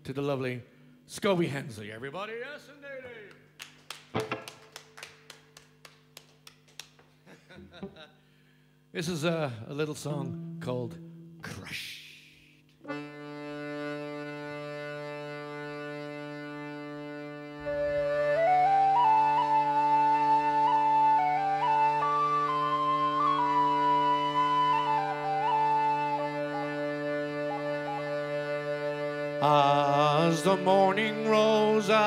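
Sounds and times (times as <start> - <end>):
accordion drone chord: 4.1 - 4.8, 9.8 - 11.6, 12.8 - 32.0
tin whistle melody: 17.6 - 29.4.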